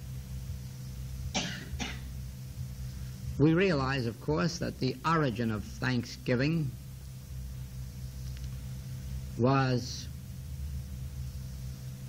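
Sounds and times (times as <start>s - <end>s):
low tape hum: 0.0s - 12.0s
throat-clearing coughs: 1.3s - 2.1s.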